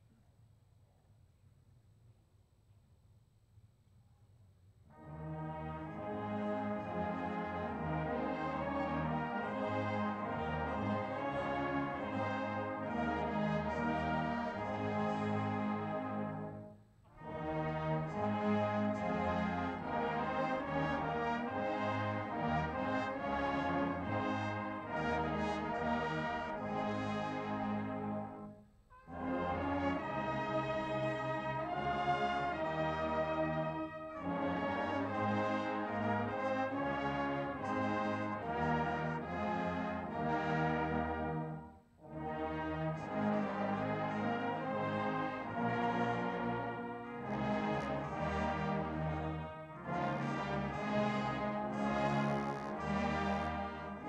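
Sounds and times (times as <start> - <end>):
brass band playing held chords: 4.9 - 54.0.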